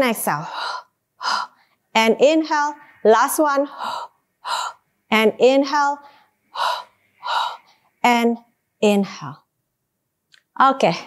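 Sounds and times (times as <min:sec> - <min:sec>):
woman breathing sharply: 0:00.4 - 0:01.8, 0:03.7 - 0:04.8, 0:06.0 - 0:07.9.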